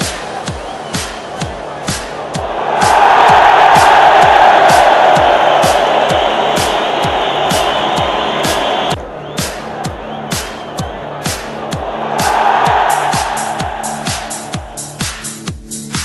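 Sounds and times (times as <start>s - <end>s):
stadium crowd cheering: 0.0s - 15.5s
music with steady beat: 0.0s - 16.0s.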